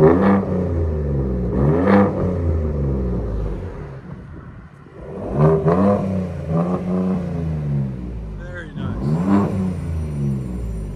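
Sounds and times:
truck engine revving: 0:05.0 - 0:10.9.

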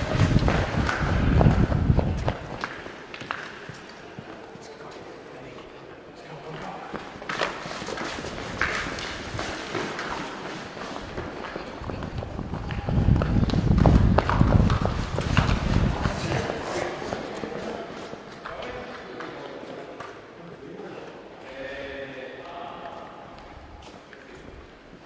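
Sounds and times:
running footsteps on concrete: 0:00.0 - 0:05.1, 0:06.5 - 0:19.1
low rumble on microphone: 0:11.8 - 0:16.6.

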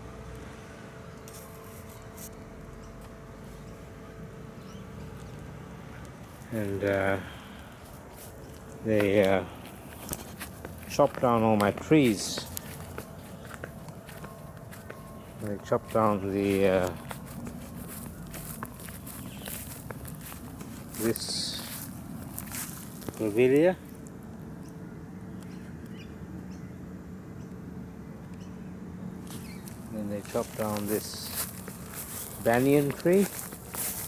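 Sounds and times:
low outdoor rumble: 0:00.0 - 0:34.0
footsteps on grass: 0:00.9 - 0:24.3, 0:29.2 - 0:34.0.

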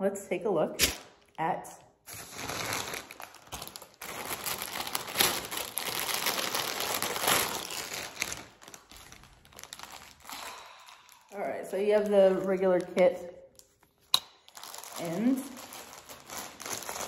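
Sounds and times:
plastic bag crinkling: 0:02.0 - 0:17.0.

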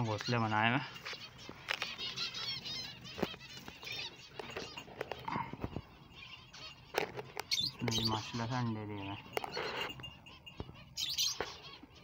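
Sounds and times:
finches chirping: 0:00.0 - 0:12.0.

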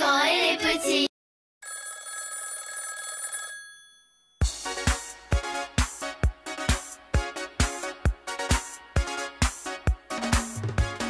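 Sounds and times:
music with thumping beat: 0:04.4 - 0:11.0.

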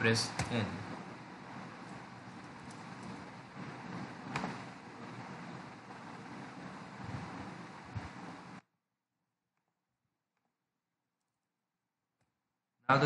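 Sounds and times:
microphone hiss: 0:00.0 - 0:08.6.

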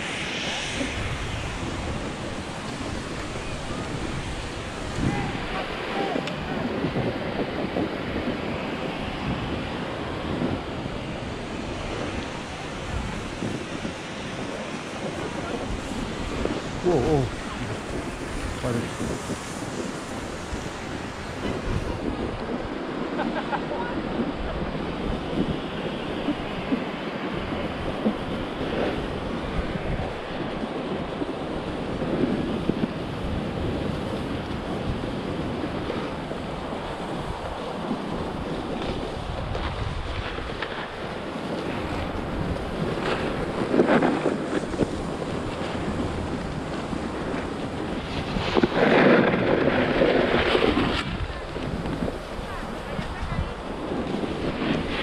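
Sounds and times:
snowboard scraping over snow: 0:00.0 - 0:55.0
wind rushing over microphone: 0:00.0 - 0:55.0.

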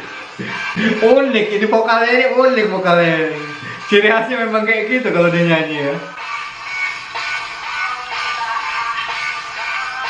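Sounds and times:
male lead vocal: 0:00.4 - 0:06.1.

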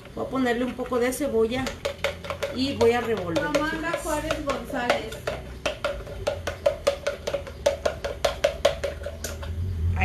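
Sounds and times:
utensil clicking against plastic bowl: 0:01.6 - 0:09.6.

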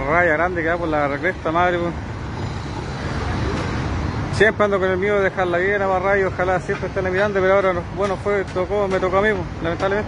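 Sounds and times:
passing road traffic: 0:00.0 - 0:10.0.

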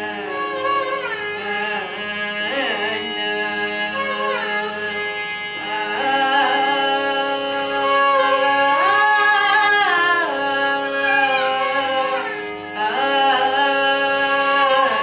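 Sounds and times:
violin accompaniment: 0:00.0 - 0:15.0
girl singing: 0:05.8 - 0:15.0.

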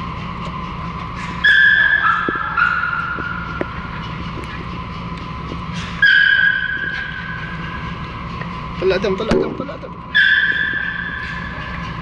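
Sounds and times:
high-pitched squeal: 0:05.7 - 0:09.3.

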